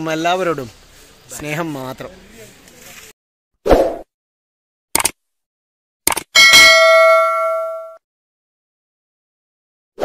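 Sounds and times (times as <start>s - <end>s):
short clicks: 5.0s - 5.2s, 6.1s - 6.3s
bright bell ding: 6.4s - 8.0s.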